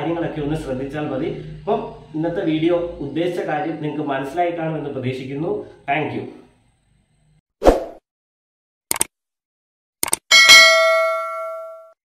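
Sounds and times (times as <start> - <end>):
bell ding: 10.3 - 12.0.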